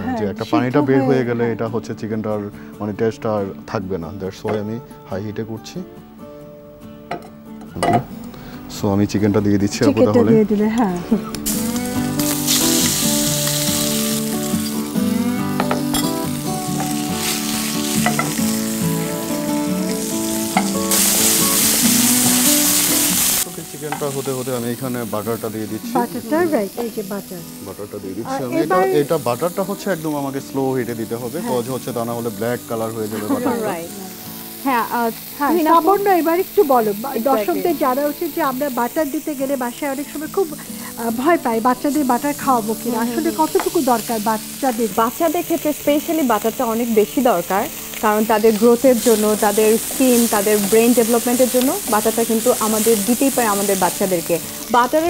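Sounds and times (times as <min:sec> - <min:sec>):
people talking: 0:00.0 - 0:05.6, 0:08.7 - 0:11.3, 0:23.5 - 0:34.1, 0:34.7 - 0:55.0
chicken sizzling in a hot pan: 0:11.4 - 0:55.0.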